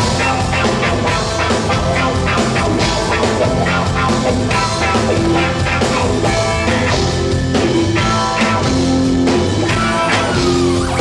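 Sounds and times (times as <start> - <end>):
drums: 0.0 - 11.0
electric guitar chords: 0.0 - 11.0.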